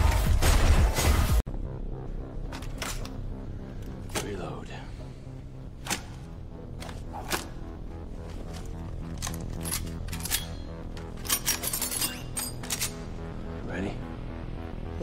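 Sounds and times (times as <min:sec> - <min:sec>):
film score: 0:00.0 - 0:15.0
low drone: 0:01.5 - 0:15.0.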